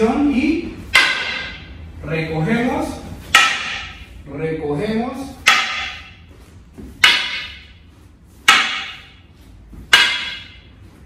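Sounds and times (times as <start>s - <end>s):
wooden stick striking wooden staff: 0.7s - 1.9s, 3.1s - 4.2s, 5.3s - 11.0s.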